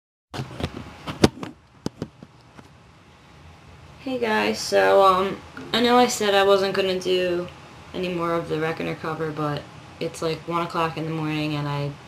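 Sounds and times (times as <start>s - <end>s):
faint room hiss: 0.4s - 12.0s.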